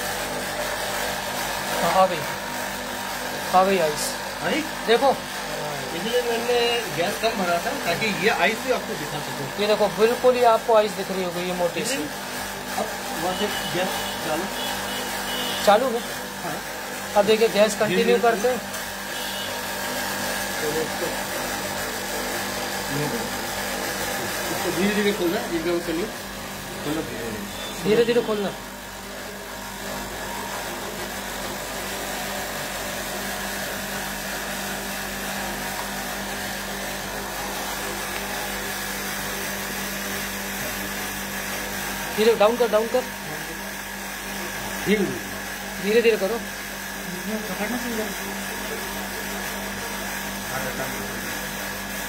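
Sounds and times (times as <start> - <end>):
fan noise: 0.0 - 51.2
air conditioner humming: 0.0 - 51.8.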